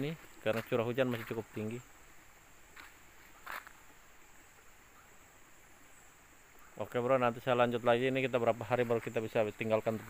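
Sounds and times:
faint high insect buzz: 0:00.0 - 0:10.0
soft scuffs: 0:00.1 - 0:01.5, 0:02.7 - 0:03.8.

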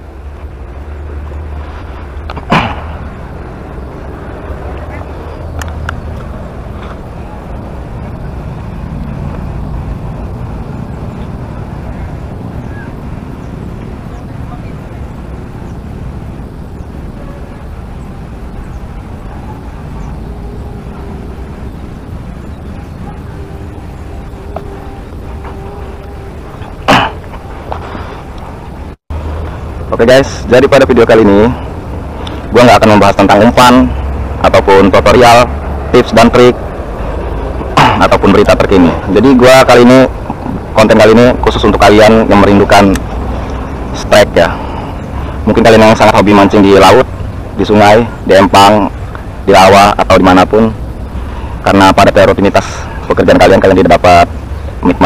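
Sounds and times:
low outdoor background rumble: 0:00.0 - 0:55.0
wind noise on microphone: 0:00.0 - 0:55.0.

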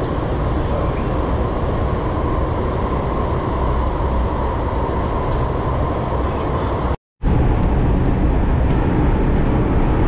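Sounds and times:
high-pitched train hum: 0:00.0 - 0:10.0
metro train rumbling: 0:00.0 - 0:10.0.

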